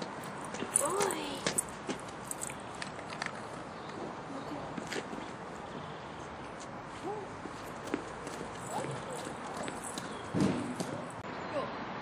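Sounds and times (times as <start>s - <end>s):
footsteps on paving stones: 0.0s - 11.2s.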